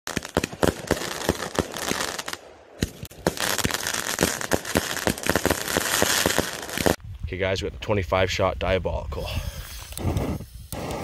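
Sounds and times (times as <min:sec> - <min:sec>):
firework crackle: 0:00.1 - 0:07.0, 0:09.6 - 0:11.0
firework shells bursting: 0:09.7 - 0:11.0.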